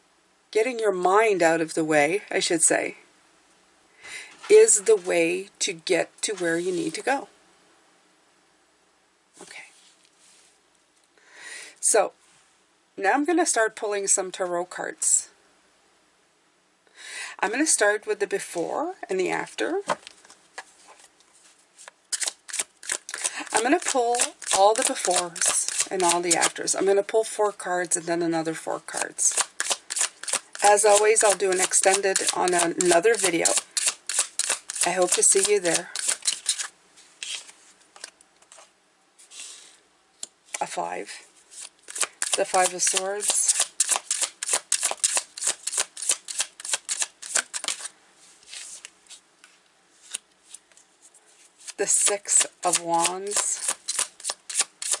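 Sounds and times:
cards being shuffled: 19.9 - 26.6, 29.3 - 39.6, 41.5 - 55.0.

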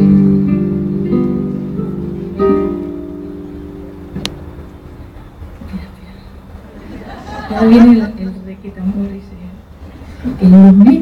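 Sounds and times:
acoustic guitar chord ringing: 0.0 - 5.5.

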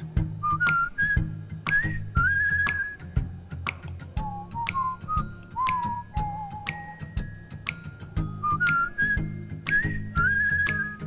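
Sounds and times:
ticking beat: 0.0 - 11.0
whistled melody: 0.0 - 11.0.

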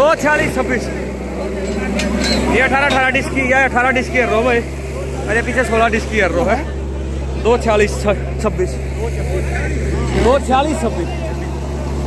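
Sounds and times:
men talking and calling out: 0.0 - 12.0
tractor engine running: 0.0 - 12.0.

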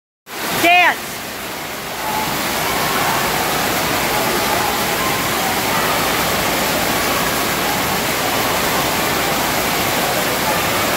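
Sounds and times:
fountain water splashing into pool: 0.3 - 10.9.

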